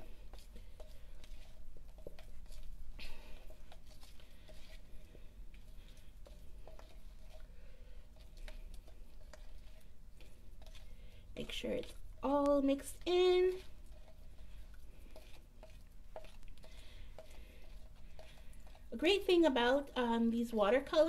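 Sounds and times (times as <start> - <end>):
utensil stirring paste in beaker: 0.0 - 21.0.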